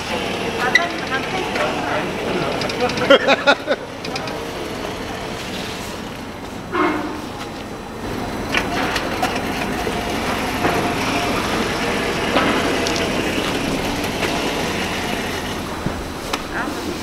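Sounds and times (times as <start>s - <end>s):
motorized cart humming: 0.0s - 17.0s
pots and buckets clattering: 0.6s - 4.4s, 8.5s - 17.0s.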